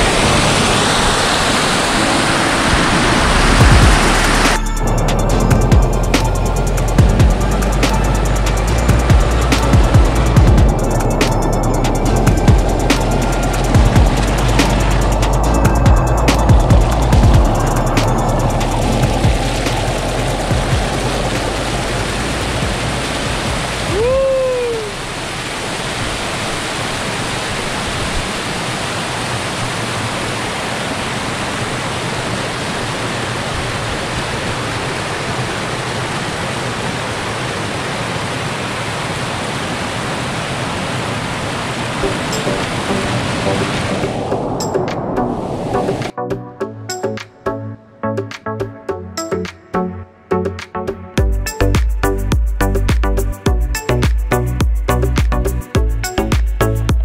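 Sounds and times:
background music: 0:00.0 - 0:24.8, 0:42.0 - 0:57.0
water cascading over rocks: 0:00.0 - 0:46.1.

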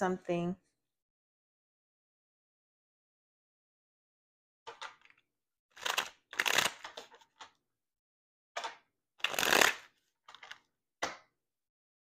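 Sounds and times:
cards being shuffled: 0:05.8 - 0:07.5, 0:08.6 - 0:10.6.

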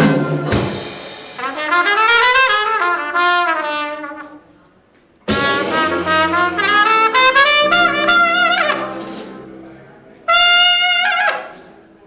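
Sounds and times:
jazz band with brass: 0:00.0 - 0:04.6, 0:05.3 - 0:11.8.

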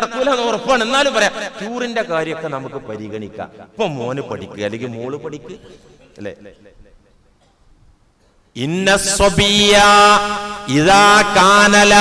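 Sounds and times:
man chanting melodically: 0:00.0 - 0:05.7, 0:08.6 - 0:12.0.

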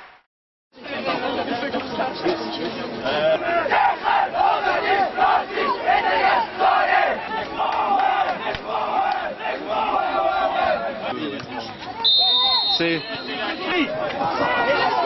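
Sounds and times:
team shouting rallying cry: 0:03.2 - 0:11.1, 0:12.0 - 0:15.0.

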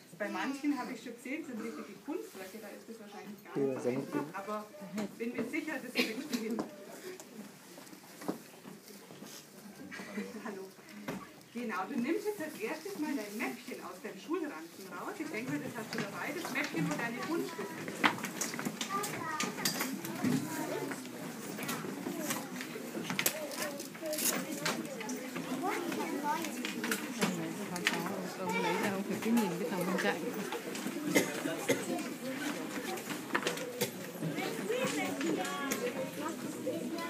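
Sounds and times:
children and adults chattering: 0:00.0 - 0:37.0
faint low voices: 0:15.0 - 0:37.0.

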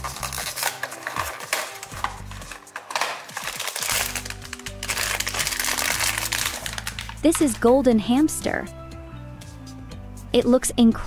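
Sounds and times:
cardboard box being opened: 0:00.0 - 0:04.3
foil wrapper crinkling: 0:00.0 - 0:07.6
background music: 0:00.0 - 0:11.0.

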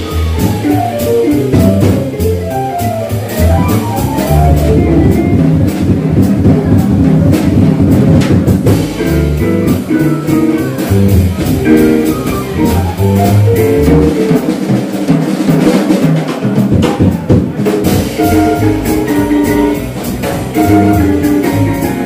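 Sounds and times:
small jazz band playing: 0:00.0 - 0:22.0.

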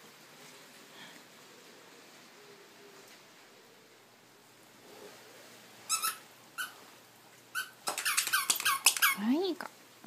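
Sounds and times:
squeaky rubber toy squeaking: 0:05.9 - 0:06.8, 0:07.5 - 0:09.2.

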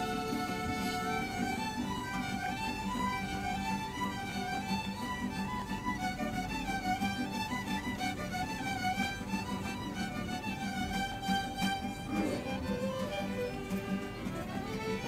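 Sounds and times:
strummed guitar rhythm: 0:00.0 - 0:15.0
violins playing melody: 0:00.0 - 0:15.0.

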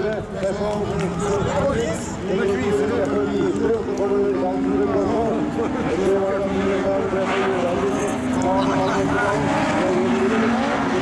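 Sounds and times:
car engines running: 0:00.0 - 0:11.0
people talking: 0:00.0 - 0:11.0.

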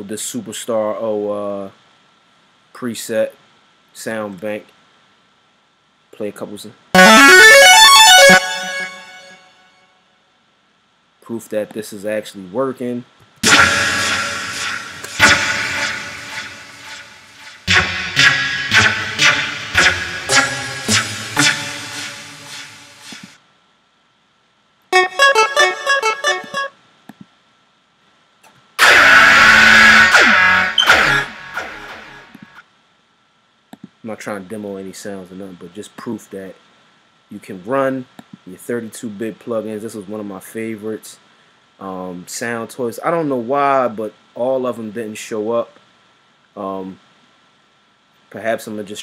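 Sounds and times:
synthesizer run of notes: 0:07.0 - 0:09.5, 0:13.4 - 0:23.4, 0:25.0 - 0:26.7, 0:28.8 - 0:32.6.

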